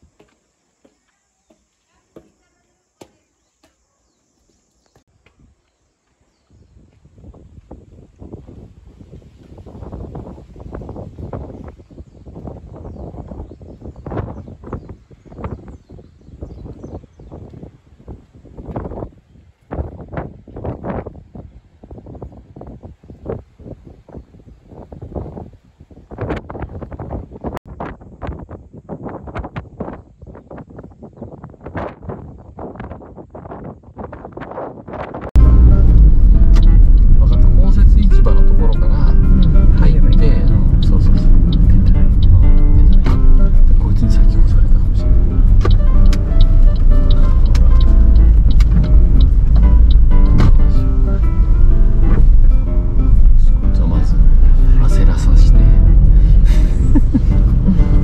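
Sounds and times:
wind buffeting microphone: 6.3 - 58.0.

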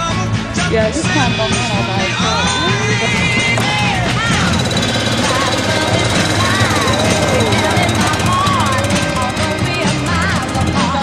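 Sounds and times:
atv engine running: 0.0 - 11.0.

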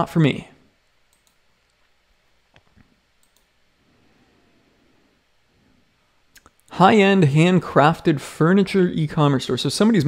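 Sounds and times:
computer mouse clicks: 1.1 - 1.8, 2.5 - 3.5.

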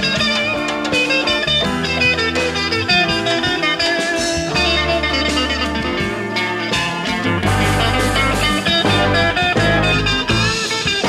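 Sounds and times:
band accompaniment: 0.0 - 11.0
electric guitar lead: 0.0 - 11.0.

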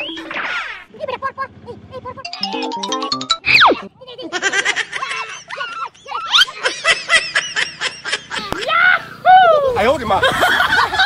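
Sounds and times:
stepped notes climbing in pitch: 2.2 - 3.9
whistle sliding down in pitch: 3.4 - 3.9.

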